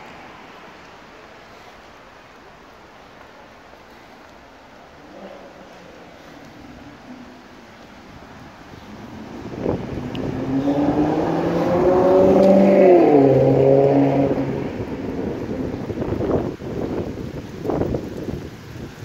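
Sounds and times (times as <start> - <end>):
vehicle passing by: 5.0 - 16.3.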